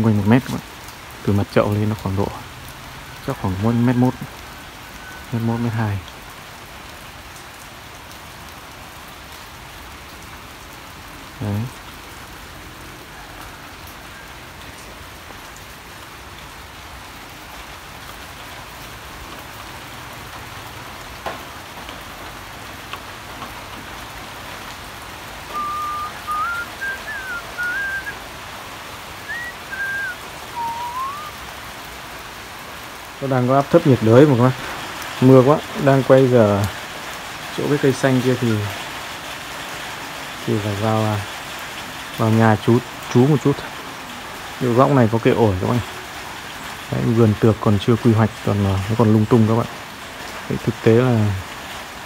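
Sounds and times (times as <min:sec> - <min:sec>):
steady rain falling: 0:00.0 - 0:52.0
short high whistled notes: 0:25.5 - 0:28.2, 0:29.3 - 0:31.4.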